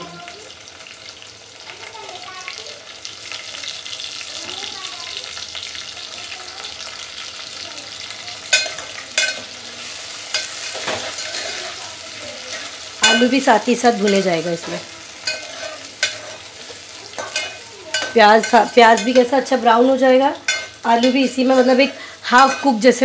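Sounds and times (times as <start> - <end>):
onions and potatoes sizzling in oil: 0.0 - 23.0
steel ladle clinking and scraping pot: 8.5 - 9.5, 10.3 - 11.8, 14.0 - 19.4, 20.4 - 23.0.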